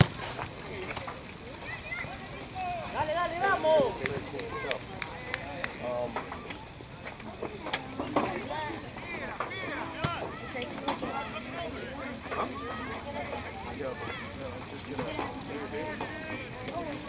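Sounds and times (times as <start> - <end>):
distant shouts of players: 8.4 - 14.5.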